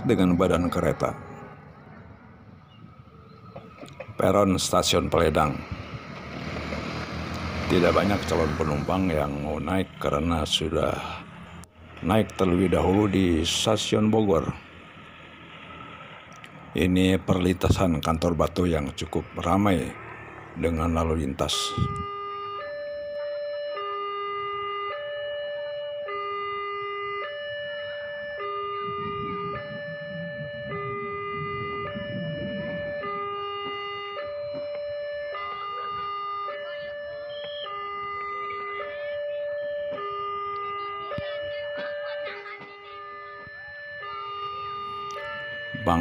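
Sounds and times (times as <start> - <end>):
level crossing two-tone alarm: 21.4 - 46.0.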